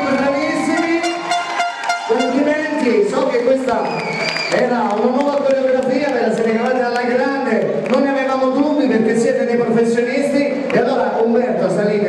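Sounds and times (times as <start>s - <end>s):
club noise: 0.0s - 4.7s
long held note: 0.8s - 2.8s.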